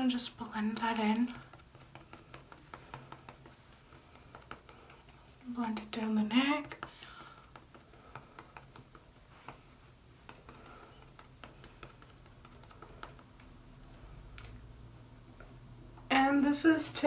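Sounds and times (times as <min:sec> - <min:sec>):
damp sponge dabbing skin: 0:00.0 - 0:14.8.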